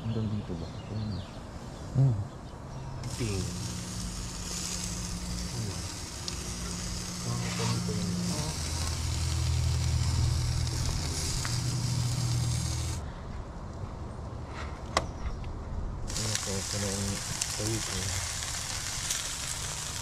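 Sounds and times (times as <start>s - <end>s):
low steady hum: 0.0s - 20.0s
chicken sizzling on grill: 3.0s - 13.0s, 16.1s - 20.0s.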